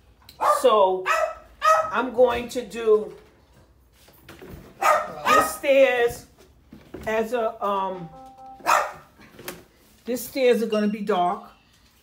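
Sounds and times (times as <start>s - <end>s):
dog barking: 0.4s - 2.0s, 4.8s - 5.6s, 8.6s - 9.2s.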